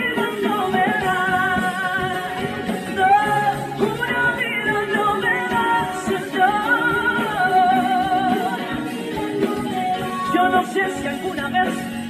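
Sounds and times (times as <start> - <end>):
band accompaniment: 0.0 - 12.0.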